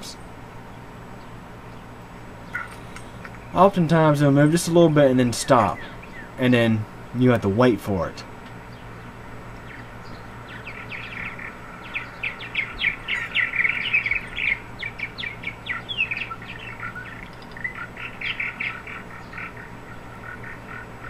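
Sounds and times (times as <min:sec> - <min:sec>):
birds chattering chirps: 0:00.0 - 0:21.0.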